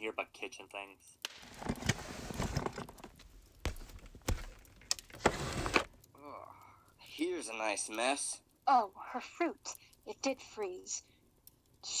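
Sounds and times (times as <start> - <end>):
rustling and scraping: 1.4 - 6.0.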